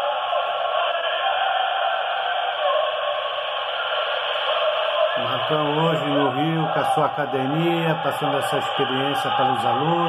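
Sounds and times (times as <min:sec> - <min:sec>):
man talking: 0:05.2 - 0:10.0.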